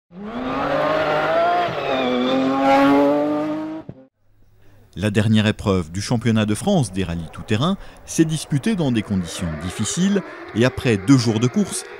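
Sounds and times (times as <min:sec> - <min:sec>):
racing car engine accelerating: 0:00.1 - 0:04.1, 0:08.1 - 0:11.9.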